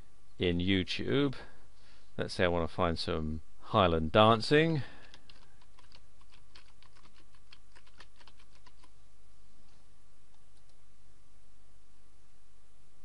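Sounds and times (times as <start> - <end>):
low steady hum: 0.0 - 13.0
computer keyboard typing: 5.0 - 8.9
faint clicks: 10.3 - 10.8.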